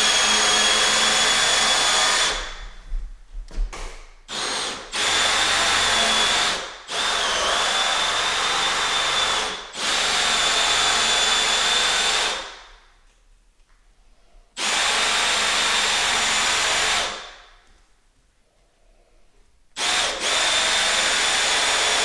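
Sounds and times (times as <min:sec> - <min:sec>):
cordless drill with hole saw whining: 0:00.0 - 0:02.5, 0:04.3 - 0:12.6, 0:14.6 - 0:17.3, 0:19.8 - 0:22.0.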